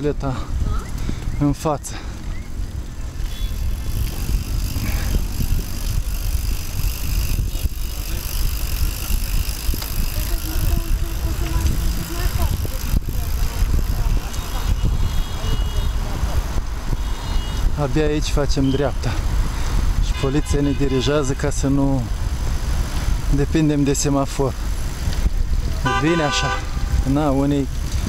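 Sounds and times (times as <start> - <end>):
wind buffeting microphone: 0.0 - 21.0, 24.5 - 28.0
bicycle riding rumble: 0.0 - 28.0
car traffic: 0.0 - 28.0.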